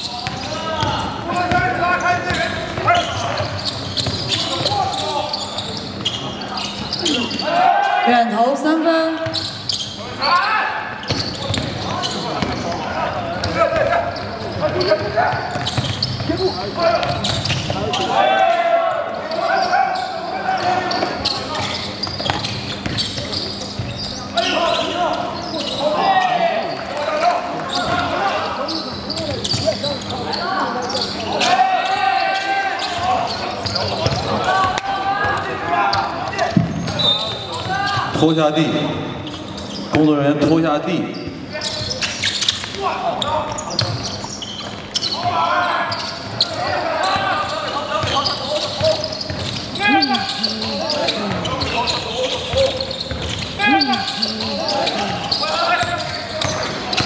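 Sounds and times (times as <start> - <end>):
shouting voices: 16.3 - 22.0, 24.2 - 38.1, 45.1 - 57.0.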